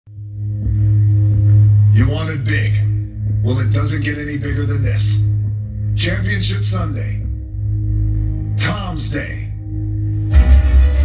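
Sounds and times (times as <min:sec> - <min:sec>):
deep low musical drone: 0:00.1 - 0:11.0.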